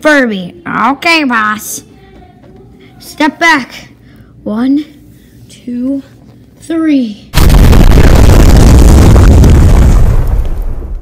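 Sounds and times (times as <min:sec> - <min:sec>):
explosion rumble with crackle: 0:07.4 - 0:11.0.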